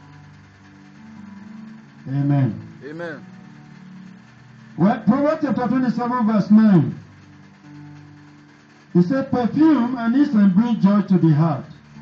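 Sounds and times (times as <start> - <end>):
soft electronic keyboard chords: 0.0 - 12.0.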